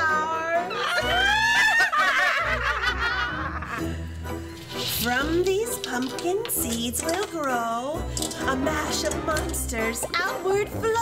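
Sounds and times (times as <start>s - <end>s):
women laughing: 0.7s - 3.9s.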